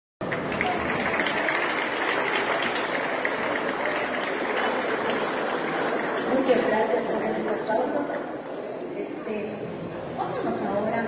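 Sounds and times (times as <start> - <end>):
crowd applauding: 0.2 - 7.7.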